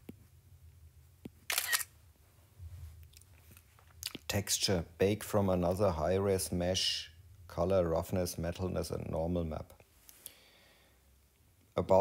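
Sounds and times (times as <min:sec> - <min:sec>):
camera shutter click: 0:01.5 - 0:01.9.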